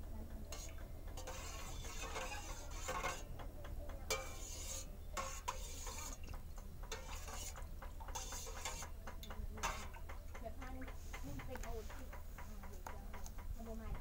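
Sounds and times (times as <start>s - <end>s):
spoon stirring liquid in pot: 0.0s - 14.0s
spoon clicking against pot: 5.2s - 14.0s.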